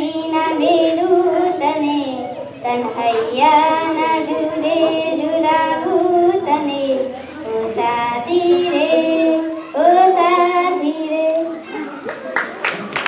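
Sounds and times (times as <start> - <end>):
girl singing into microphone: 0.0 - 11.6.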